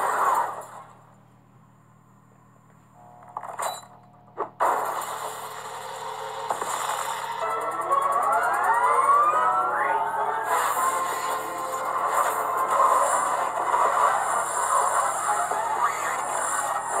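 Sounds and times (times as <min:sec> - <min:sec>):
loud electrical crackling: 0:04.6 - 0:07.5, 0:10.4 - 0:17.0
rising electrical whines: 0:05.1 - 0:17.0.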